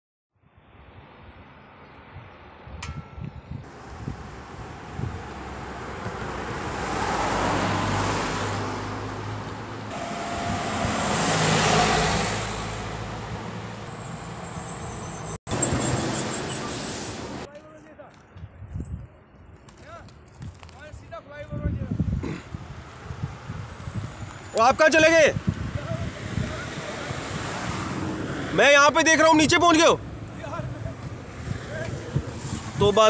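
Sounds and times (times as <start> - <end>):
road vehicles passing: 0.6 - 18.4, 21.9 - 33.0.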